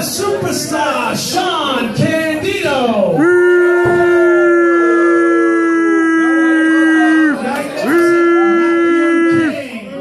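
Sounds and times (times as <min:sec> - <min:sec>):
man calling out long: 0:03.2 - 0:09.7.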